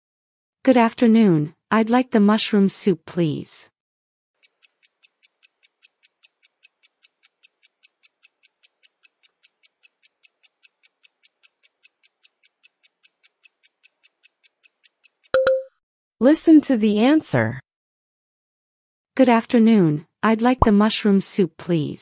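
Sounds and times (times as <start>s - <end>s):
quick timer ticks: 4.4s - 15.7s
brief low tone: 15.4s - 15.7s.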